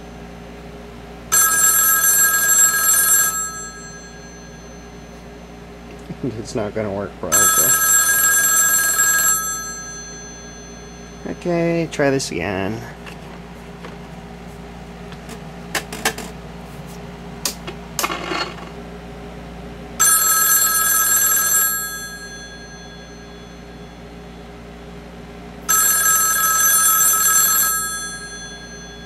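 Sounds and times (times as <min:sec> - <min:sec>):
telephone bell ringing: 0:01.3 - 0:05.8, 0:07.3 - 0:11.5, 0:20.0 - 0:24.6, 0:25.7 - 0:29.0.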